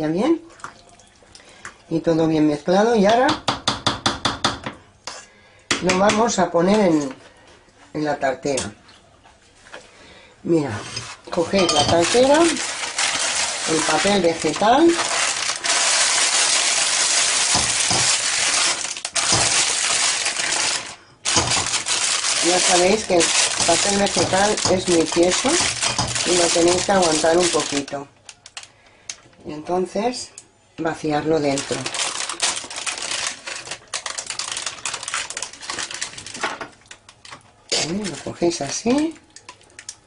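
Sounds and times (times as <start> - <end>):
baking paper crinkling: 11.0 - 28.7, 31.4 - 40.0.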